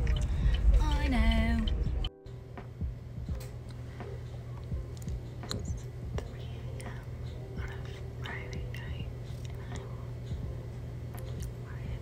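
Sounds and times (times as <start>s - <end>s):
steady low hum: 0.0s - 12.0s
woman whispering: 5.6s - 10.1s, 11.5s - 12.0s.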